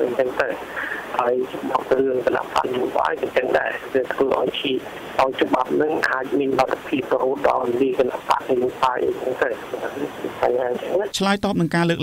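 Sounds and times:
person talking: 0:00.0 - 0:12.0.

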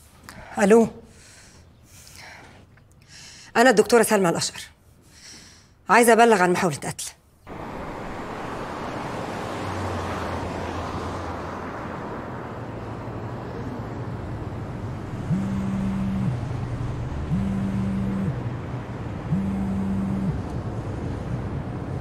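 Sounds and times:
car road and engine noise: 0:07.4 - 0:22.0
mobile phone buzzing: 0:15.2 - 0:16.6, 0:17.2 - 0:18.5, 0:19.3 - 0:20.5.

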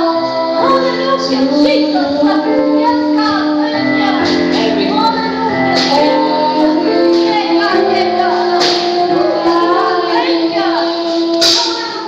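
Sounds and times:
long held accompaniment chords: 0:00.0 - 0:11.5
women singing into microphones: 0:00.0 - 0:12.0.

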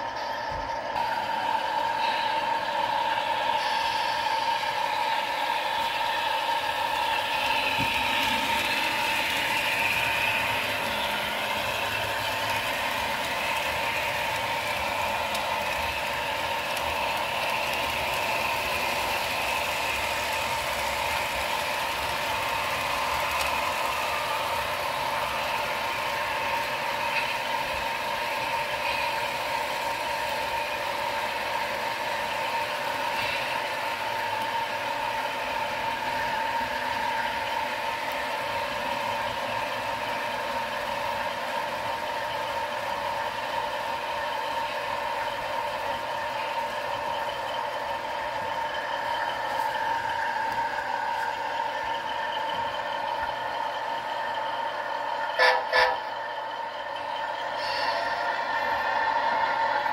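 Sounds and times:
model train whirring: 0:00.0 - 0:59.9
wheels rolling on rail: 0:00.0 - 0:59.9.

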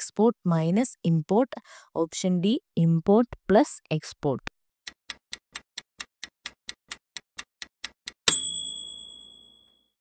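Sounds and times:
clock ticking: 0:04.9 - 0:08.2
bright chime ringing: 0:08.3 - 0:10.0.

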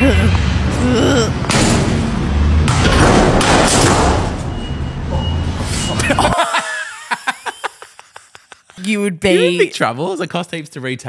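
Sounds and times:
loud rushing noise with low rumble: 0:00.0 - 0:04.8
people laughing: 0:06.0 - 0:09.6.

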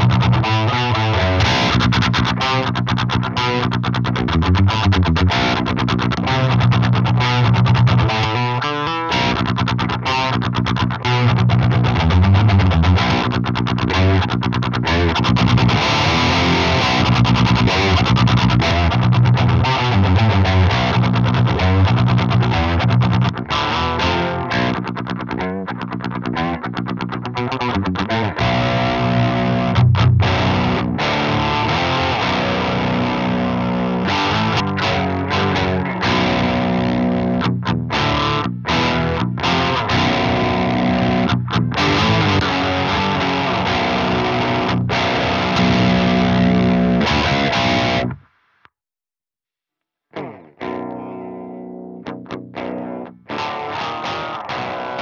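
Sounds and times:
distorted electric guitar riffing: 0:00.0 - 0:48.2, 0:50.1 - 0:55.0.

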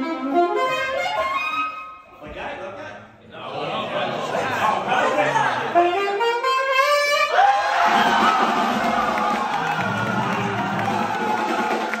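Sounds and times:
saxophone playing: 0:00.0 - 0:02.2, 0:05.6 - 0:07.4
people cheering and whooping: 0:07.3 - 0:12.0.

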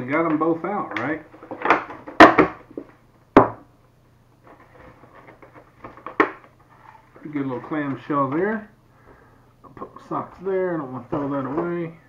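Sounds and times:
plastic tray rustling: 0:04.4 - 0:08.6.

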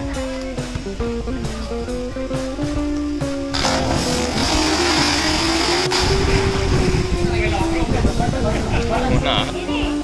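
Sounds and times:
background music with held notes: 0:00.0 - 0:10.0
diver splashing into water: 0:03.5 - 0:06.8
churning water rushing: 0:03.5 - 0:08.1.

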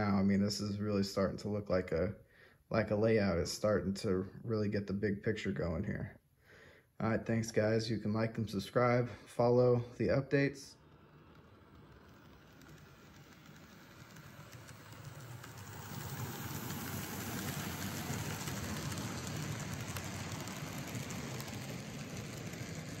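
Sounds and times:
model train rolling whir: 0:00.0 - 0:02.2, 0:07.0 - 0:23.0
wheels clicking on rails: 0:07.0 - 0:23.0.

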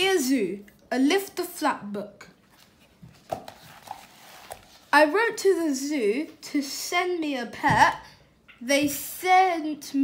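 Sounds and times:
woman reading aloud: 0:00.0 - 0:02.4, 0:04.9 - 0:10.0
paper book rustling: 0:02.4 - 0:05.4.

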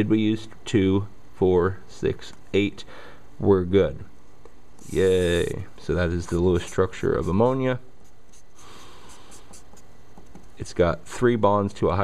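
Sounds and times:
marker rubbing on paper: 0:04.8 - 0:05.6, 0:06.2 - 0:09.9.

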